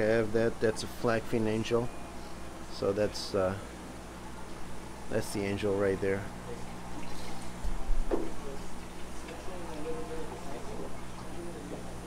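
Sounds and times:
aquarium water: 4.4s - 12.0s.

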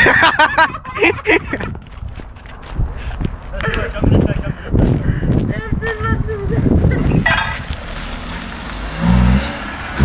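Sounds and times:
car engine revving: 7.3s - 10.0s.

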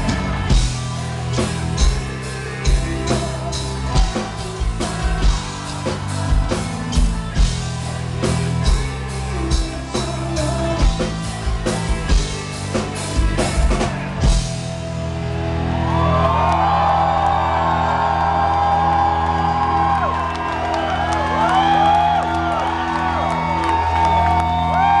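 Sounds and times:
crowd cheering and whistling: 15.1s - 25.0s.

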